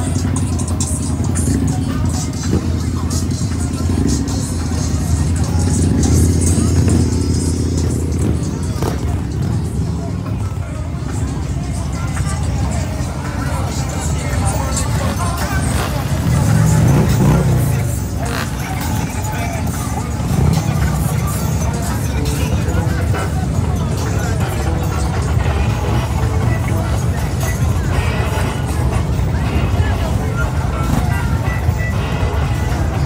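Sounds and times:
crowd chatter: 0.0 - 33.0
motorcycle engines rumbling: 0.0 - 33.0
music: 0.0 - 33.0.

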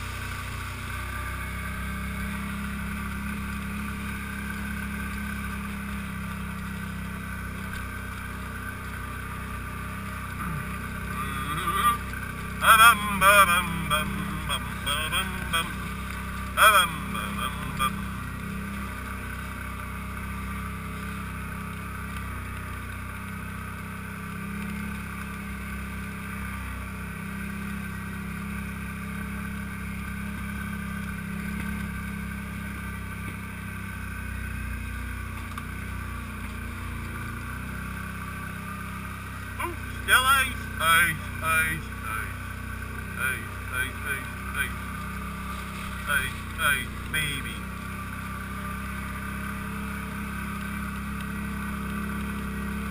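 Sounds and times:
quad bike engine running: 0.0 - 52.9
person shouting: 10.4 - 15.9, 16.6 - 18.0, 39.6 - 42.3.

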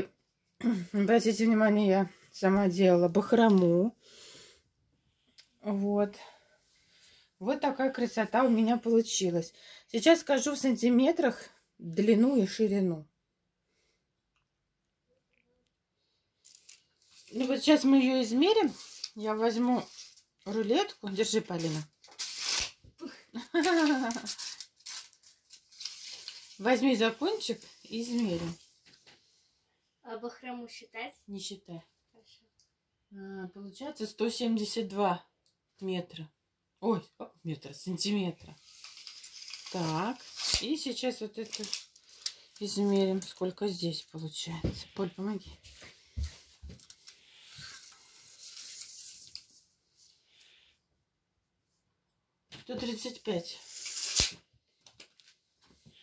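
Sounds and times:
tape measure drawn out rustling: 18.6 - 20.2, 21.6 - 22.8, 23.7 - 26.7, 38.6 - 43.3, 46.8 - 49.6, 53.6 - 54.5.

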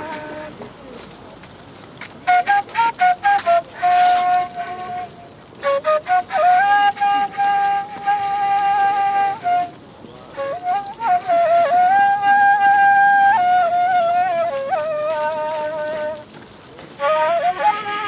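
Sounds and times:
end-blown flute melody: 0.0 - 0.7, 2.2 - 16.3, 16.9 - 18.0.

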